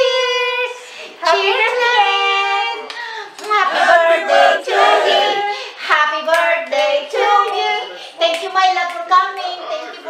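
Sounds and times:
women singing: 0.0s - 9.2s.

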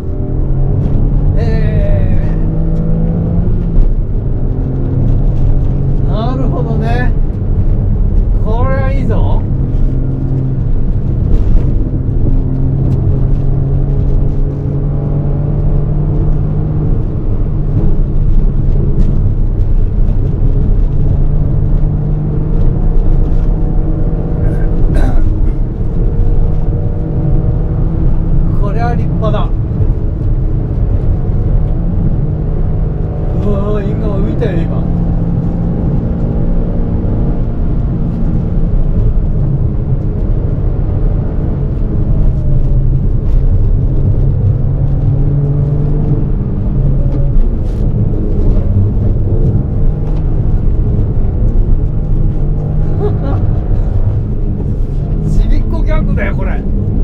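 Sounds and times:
car engine accelerating through gears: 0.0s - 57.0s.

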